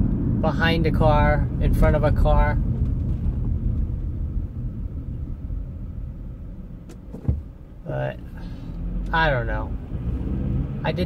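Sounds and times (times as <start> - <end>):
engine and road rumble: 0.0 - 11.0
short low thump: 6.8 - 7.7.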